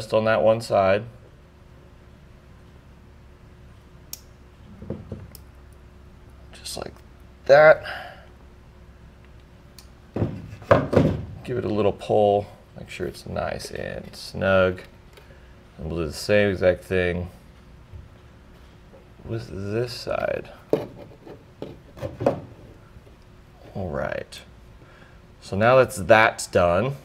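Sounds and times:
crimping tool handling rubbing and knocks: 0:20.7 - 0:22.7.

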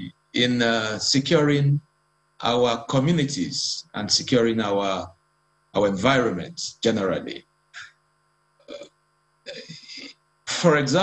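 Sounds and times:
man saying uh: 0:00.0 - 0:01.8, 0:02.4 - 0:05.1, 0:05.8 - 0:07.4, 0:09.5 - 0:11.0.

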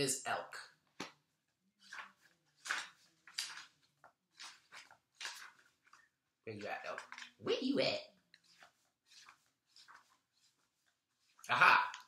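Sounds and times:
pages being flipped: 0:00.9 - 0:07.7, 0:08.3 - 0:12.0.

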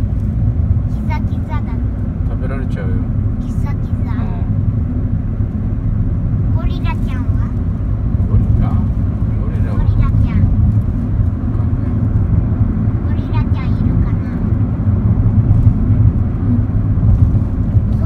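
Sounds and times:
car interior engine and road rumble: 0:00.0 - 0:18.0.

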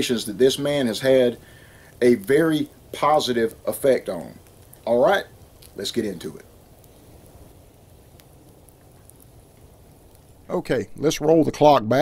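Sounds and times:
campfire crackling: 0:00.0 - 0:12.0
fire popping: 0:00.0 - 0:12.0
low steady hiss: 0:00.0 - 0:12.0.

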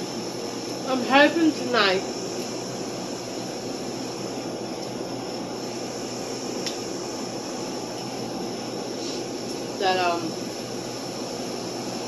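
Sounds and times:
ventilation equipment hum: 0:00.0 - 0:12.0.

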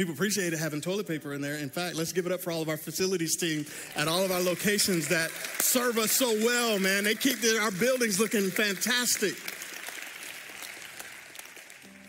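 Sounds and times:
congregation applauding: 0:03.4 - 0:12.0.

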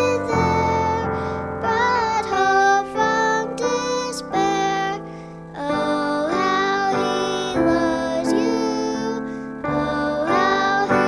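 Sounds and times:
girl singing gospel song: 0:00.0 - 0:11.0.

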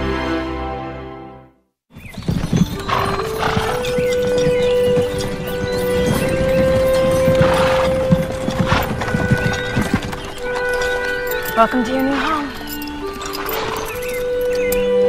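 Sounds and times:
film score of held notes: 0:00.0 - 0:15.0
hooves clip-clopping on dirt road: 0:02.0 - 0:15.0
wooden-wheeled wagon rolling: 0:02.0 - 0:15.0.

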